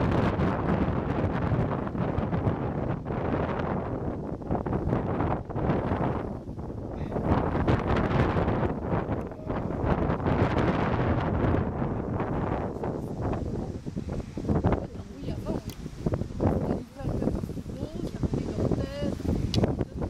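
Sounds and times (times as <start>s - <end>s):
wind gusting over microphone: 0.0s - 20.0s.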